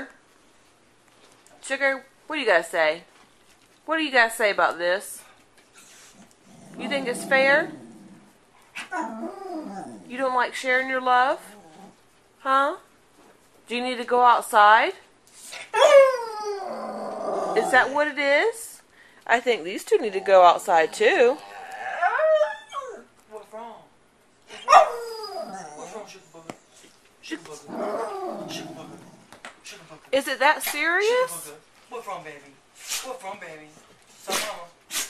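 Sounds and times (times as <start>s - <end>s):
dog whining: 8.8s - 10.1s, 15.6s - 18.0s, 20.9s - 23.1s, 24.5s - 26.2s, 27.6s - 29.1s.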